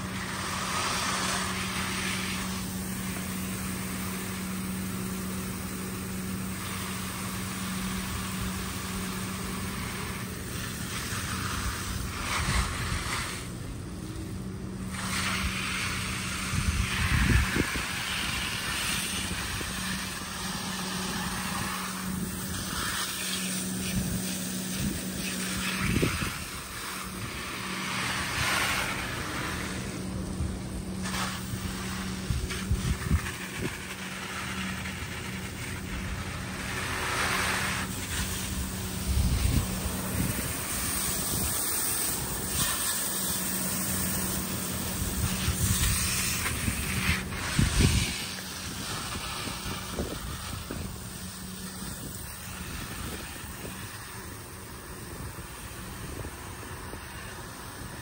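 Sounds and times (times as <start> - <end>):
hose spray hissing on plants: 0.0 - 58.0
steady low hum: 0.0 - 58.0.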